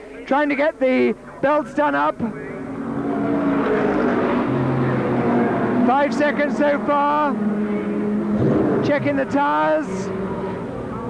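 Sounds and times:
racing car engines running: 0.3s - 11.0s
racing car passing by: 2.2s - 11.0s.

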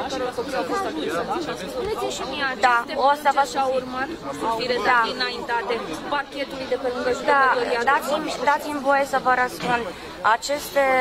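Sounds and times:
people talking over one another: 0.0s - 11.0s.

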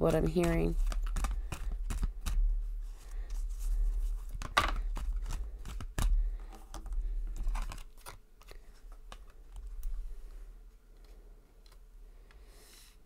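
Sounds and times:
cards being shuffled: 0.1s - 10.0s.

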